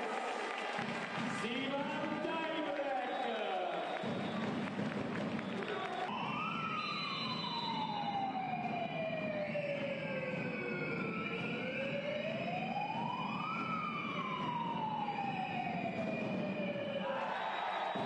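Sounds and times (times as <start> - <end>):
siren wailing: 5.9 - 18.0.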